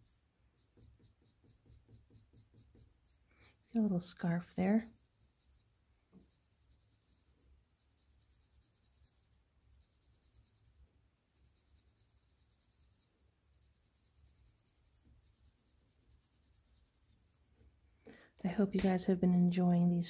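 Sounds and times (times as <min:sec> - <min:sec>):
pencil scratching on paper: 0:00.0 - 0:17.4.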